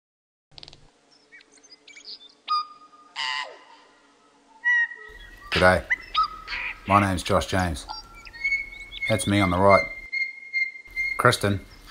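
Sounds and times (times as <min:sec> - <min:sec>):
birds chirping and whistling: 0:01.1 - 0:11.9
harsh bird call: 0:01.3 - 0:11.9.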